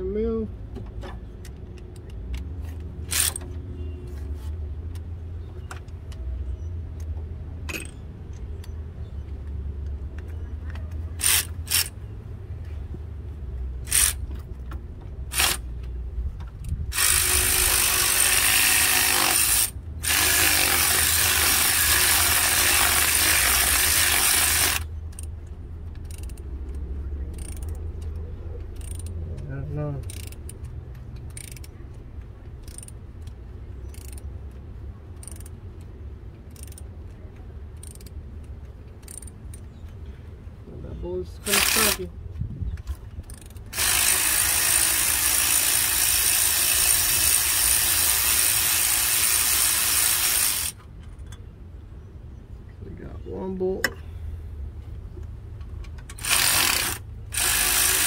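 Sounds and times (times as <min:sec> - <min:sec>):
ratchet turning bolts: 0:03.0 - 0:03.5, 0:11.2 - 0:12.0, 0:13.8 - 0:14.4, 0:15.3 - 0:15.7, 0:16.5 - 0:37.1, 0:37.7 - 0:39.7, 0:41.4 - 0:42.1, 0:43.2 - 0:51.4, 0:55.9 - 0:58.0.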